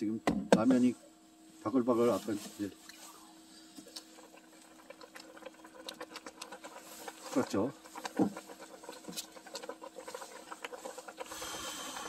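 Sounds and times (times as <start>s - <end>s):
water boiling in a saucepan: 2.0s - 12.0s.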